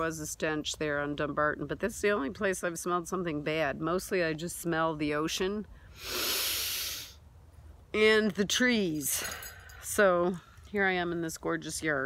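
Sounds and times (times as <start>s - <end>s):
person sniffing through nose: 6.0s - 7.2s.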